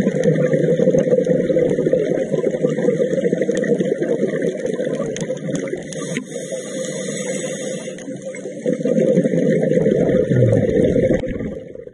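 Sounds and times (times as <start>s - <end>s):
muffled underwater rushing: 7.6s - 11.9s.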